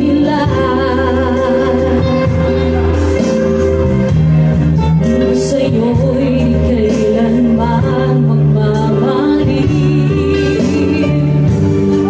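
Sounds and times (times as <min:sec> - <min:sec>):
person singing with vibrato: 0:00.0 - 0:04.0, 0:04.7 - 0:12.0
keyboard chords: 0:00.0 - 0:12.0.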